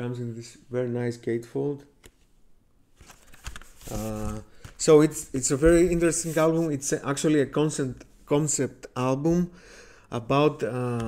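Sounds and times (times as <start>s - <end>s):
cardboard sleeve rustling: 3.0s - 7.0s.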